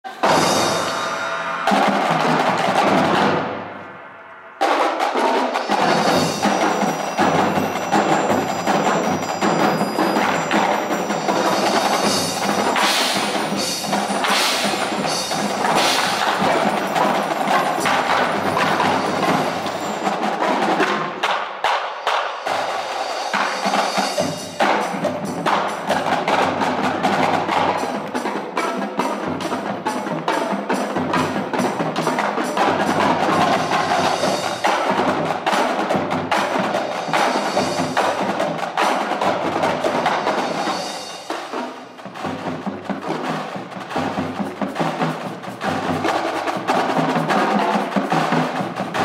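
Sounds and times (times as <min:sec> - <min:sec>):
drumline playing: 0:00.0 - 0:49.0
mallet percussion: 0:00.1 - 0:21.3, 0:22.0 - 0:49.0.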